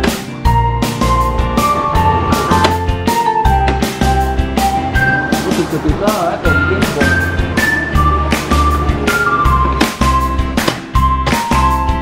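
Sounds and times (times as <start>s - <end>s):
person speaking: 5.3s - 7.4s.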